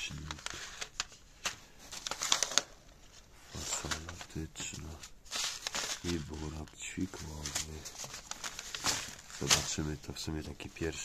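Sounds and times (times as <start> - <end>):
seed packets rustling and crinkling: 0.0 - 11.0.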